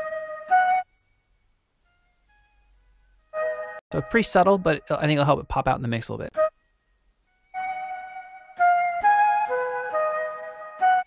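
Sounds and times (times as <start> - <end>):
synthesized flute melody: 0.0 - 5.0, 6.3 - 11.0.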